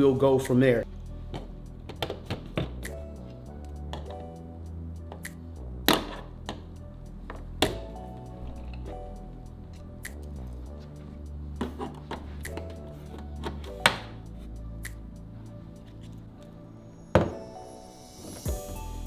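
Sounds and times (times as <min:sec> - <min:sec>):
background music with bass line: 0:00.0 - 0:19.0.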